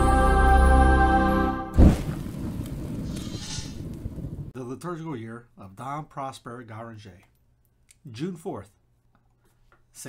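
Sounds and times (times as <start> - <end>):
low thunder-like rumble: 1.8 - 4.5.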